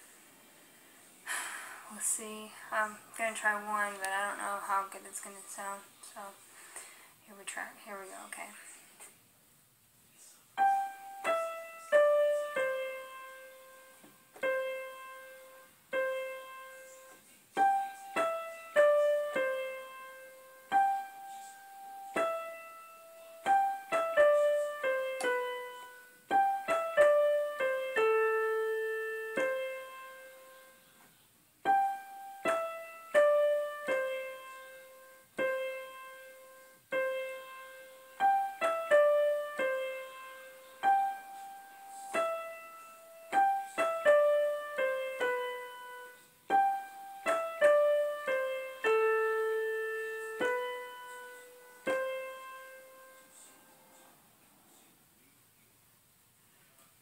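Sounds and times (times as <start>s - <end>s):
keyboard melody: 10.6s - 31.0s, 31.6s - 53.6s.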